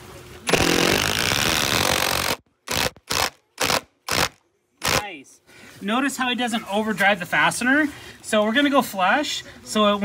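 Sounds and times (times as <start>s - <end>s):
impact driver driving screw: 0.5s - 5.0s.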